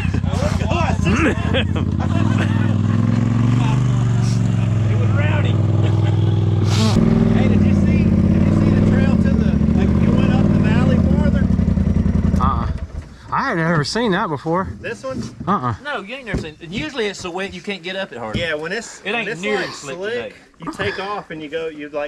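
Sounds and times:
people talking and laughing: 0.0s - 11.7s, 12.3s - 22.0s
vehicle engine idling: 0.0s - 13.4s.

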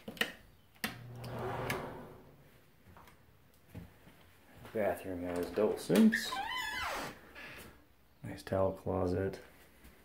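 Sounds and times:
brief low hum with rushing noise: 0.8s - 2.8s.

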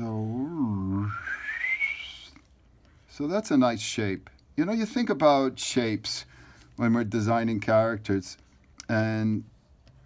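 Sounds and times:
man whistling rising note: 0.4s - 2.4s.

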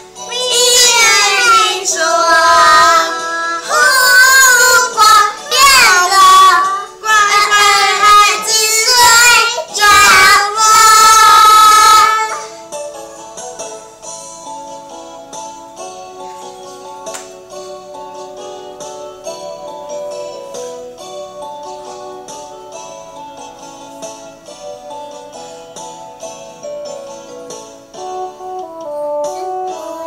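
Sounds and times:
instrumental backing track: 0.0s - 30.0s
children singing: 0.3s - 12.6s.

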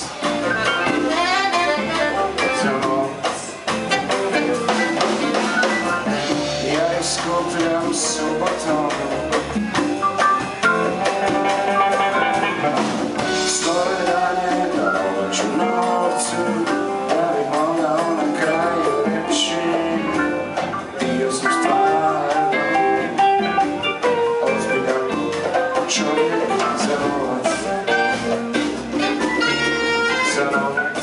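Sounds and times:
electric guitars: 0.0s - 31.0s
jazz band playing: 0.0s - 31.0s.

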